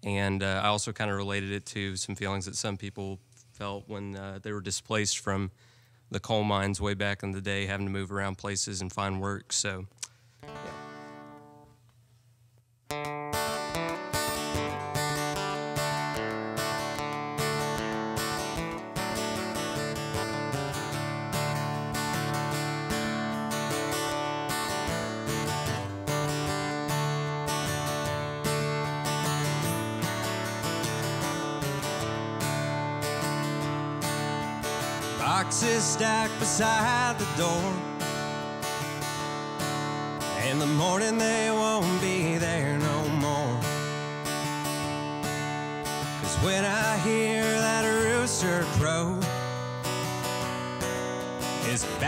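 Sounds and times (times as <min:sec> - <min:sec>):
acoustic guitar strumming: 0:10.4 - 0:11.9, 0:12.8 - 0:52.0.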